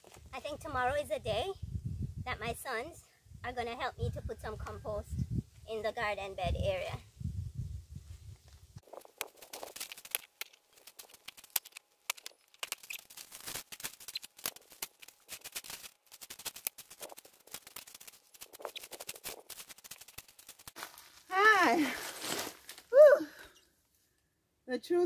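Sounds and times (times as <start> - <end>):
gravel crunching: 8.4 - 22.9
stones clicking together: 9.0 - 20.8.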